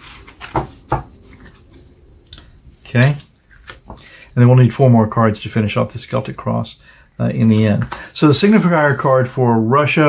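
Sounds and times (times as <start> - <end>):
playing cards swept on cloth: 8.3 - 9.2.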